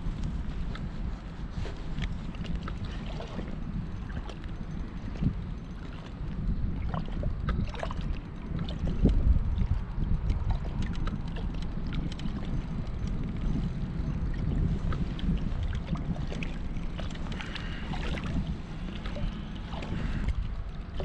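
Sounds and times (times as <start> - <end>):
water lapping: 0.0 - 21.0
wind buffeting microphone: 0.0 - 21.0.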